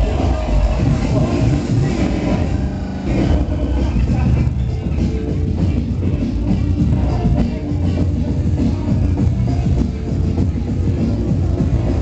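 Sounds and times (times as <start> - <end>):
bass-heavy dance music: 0.0 - 12.0.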